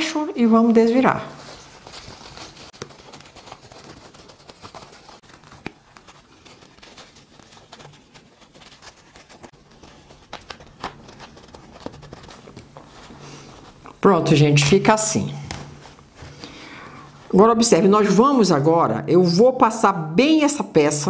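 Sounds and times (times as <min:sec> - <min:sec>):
fabric rustling and crinkling: 0:00.4 - 0:17.5.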